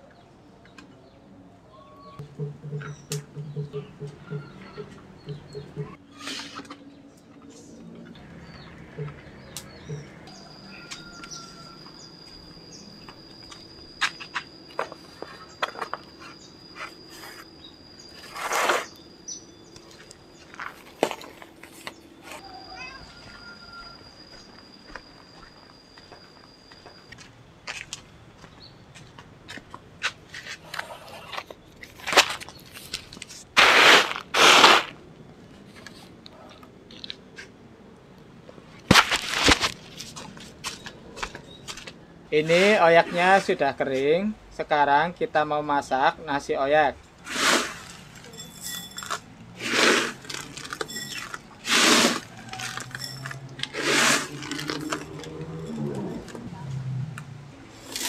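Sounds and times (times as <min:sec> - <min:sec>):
bird chirps: 0:00.0 - 0:20.6
bamboo trays rustling and scraping: 0:05.8 - 0:06.9, 0:13.6 - 0:19.0, 0:19.8 - 0:22.5, 0:30.0 - 0:37.6, 0:38.7 - 0:44.2, 0:47.1 - 0:58.0
high insect drone: 0:08.2 - 0:28.4
loud rasping bursts: 0:51.6 - 0:53.0, 0:53.7 - 0:54.8.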